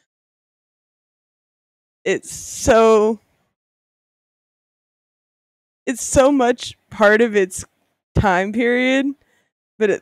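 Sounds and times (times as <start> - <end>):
person talking: 2.1 - 3.2, 5.9 - 9.2.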